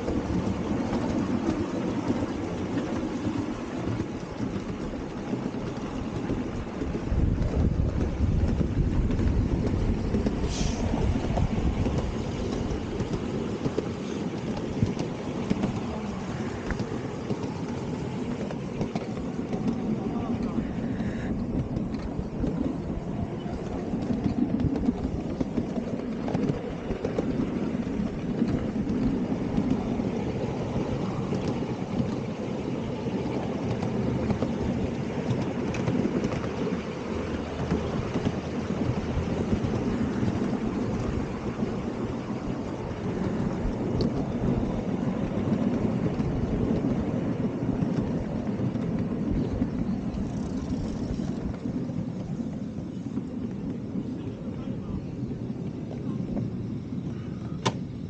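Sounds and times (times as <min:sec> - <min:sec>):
train wheels clattering on rails: 0:00.0 - 0:58.0.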